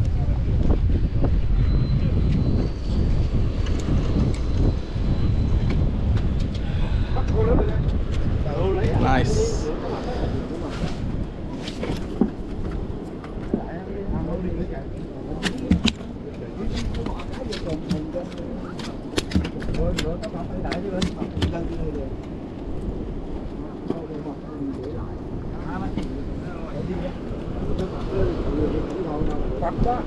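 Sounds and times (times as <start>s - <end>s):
wind rumbling on microphone: 0.0s - 30.0s.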